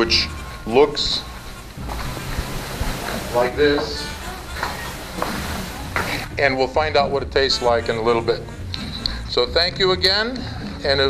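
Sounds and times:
room noise in a hall: 0:00.0 - 0:06.6.

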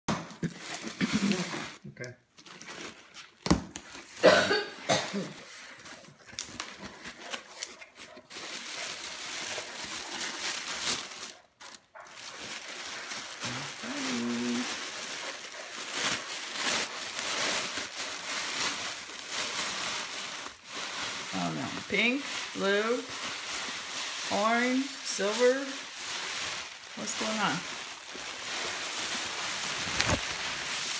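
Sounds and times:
tissue paper rustling: 0:00.3 - 0:01.8, 0:02.4 - 0:04.2, 0:05.2 - 0:30.9
person's voice: 0:01.0 - 0:02.1, 0:13.5 - 0:14.7, 0:21.3 - 0:23.2, 0:24.2 - 0:25.9, 0:27.0 - 0:27.7
cardboard box flaps and paper rustling: 0:29.6 - 0:30.9.

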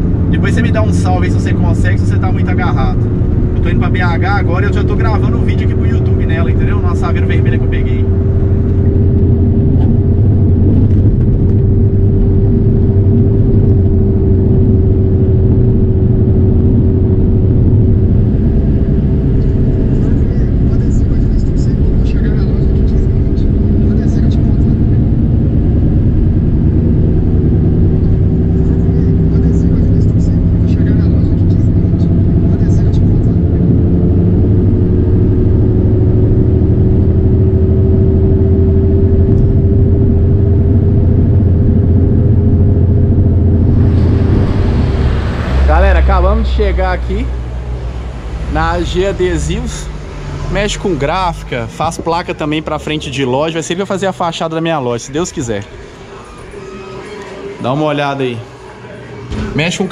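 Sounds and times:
engine and road drone: 0:00.0 - 0:59.9
humming tone wavering in pitch: 0:55.1 - 0:59.9.

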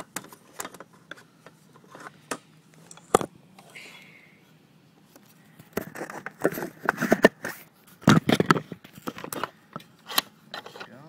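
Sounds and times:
hard plastic parts clattering: 0:00.0 - 0:03.3, 0:05.6 - 0:11.0.

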